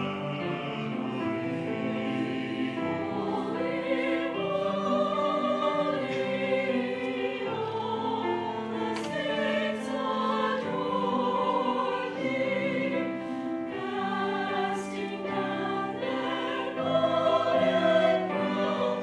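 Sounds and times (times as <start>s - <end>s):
church choir singing: 0.0s - 19.0s.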